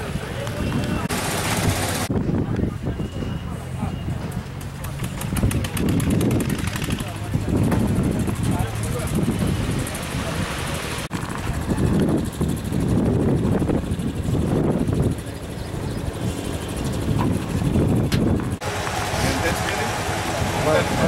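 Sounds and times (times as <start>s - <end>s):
engine running: 0.0s - 2.3s, 3.6s - 21.0s.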